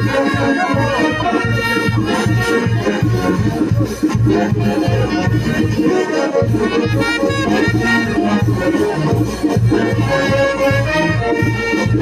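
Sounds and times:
brass band playing dance music: 0.0 - 12.0.

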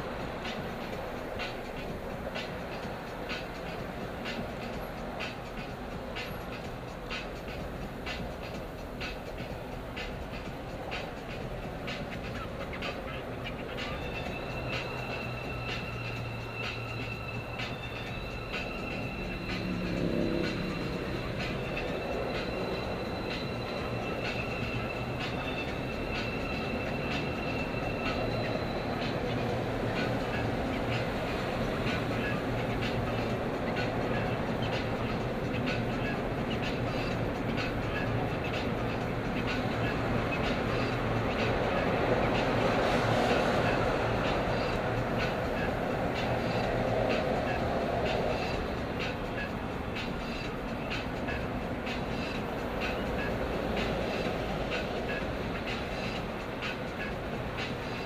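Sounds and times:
car engine and tire rumble: 0.0 - 58.0
rising engine note: 18.2 - 24.0.

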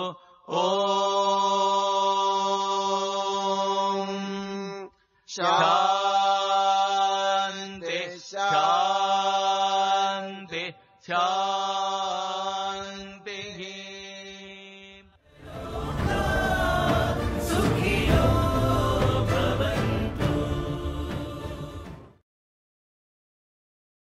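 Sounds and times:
chant on one steady pitch: 0.0 - 22.2
music: 15.4 - 22.2.

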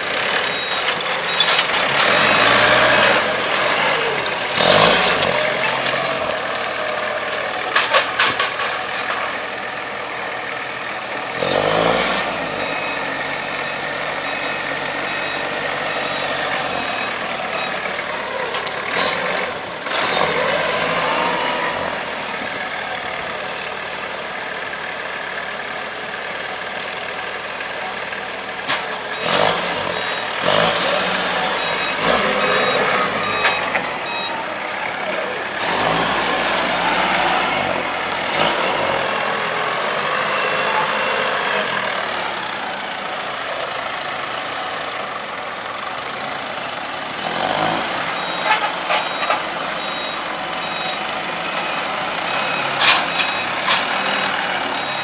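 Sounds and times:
forklift engines revving: 0.0 - 55.0
reversing alarm beeping: 0.4 - 6.6, 11.4 - 19.4, 29.1 - 37.7, 47.4 - 55.0.

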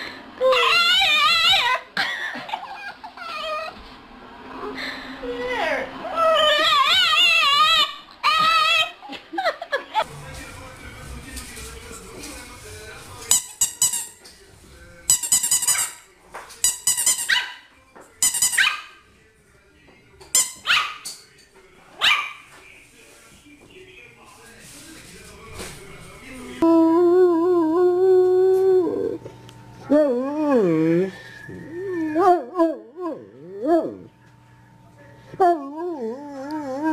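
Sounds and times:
large dog howling: 0.4 - 1.8, 5.5 - 9.0, 29.9 - 34.1, 35.4 - 36.9.

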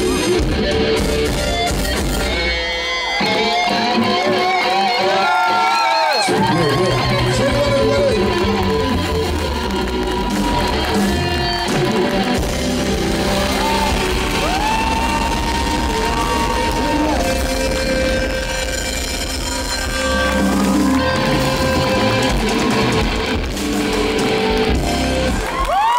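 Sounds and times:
rock band playing: 0.0 - 25.9
electric guitar bent notes: 6.2 - 25.6.

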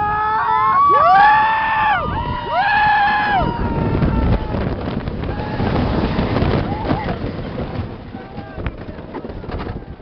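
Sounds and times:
people screaming on roller coaster: 0.0 - 7.1
wind rushing: 1.8 - 10.0.

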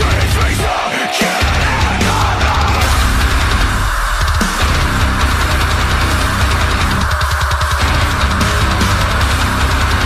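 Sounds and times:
heavy metal music: 0.0 - 10.0.

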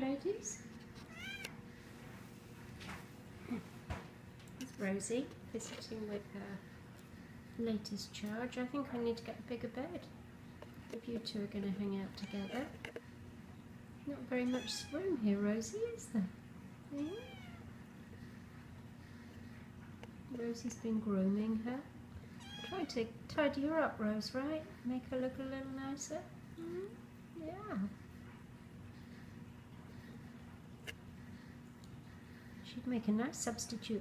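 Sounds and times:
faint steady low hum: 0.0 - 34.0
cat meowing: 1.1 - 1.5, 14.4 - 15.0, 17.0 - 17.6, 22.4 - 22.9
kitten mewing: 1.1 - 1.5.

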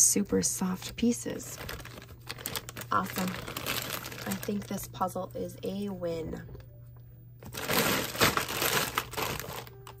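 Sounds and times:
plastic bag crinkling: 0.8 - 5.0, 7.4 - 10.0.

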